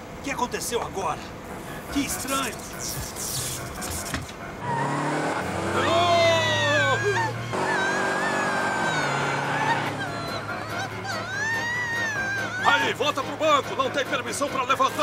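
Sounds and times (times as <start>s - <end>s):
man yelling in alarm: 5.8s - 8.3s.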